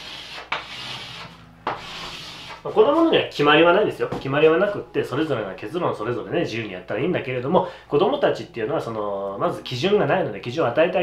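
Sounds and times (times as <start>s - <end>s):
chalk scraping on a chalkboard: 0.0s - 3.1s.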